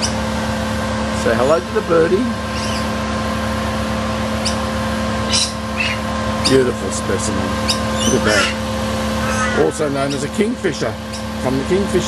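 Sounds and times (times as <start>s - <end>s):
machine hum: 0.0s - 12.0s
brief high sound: 9.2s - 10.0s.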